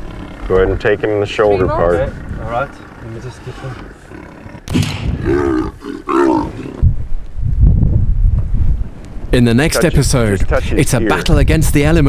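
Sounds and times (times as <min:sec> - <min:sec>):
leopard snarling: 0:00.0 - 0:06.9
deep rumbling: 0:00.0 - 0:12.0
sudden sharp noise: 0:04.7 - 0:05.4.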